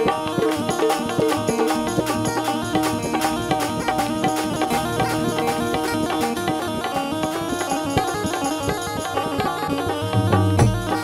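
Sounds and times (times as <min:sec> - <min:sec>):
melodic instrumental lead: 0:00.0 - 0:11.0
regular drum beats: 0:00.0 - 0:11.0.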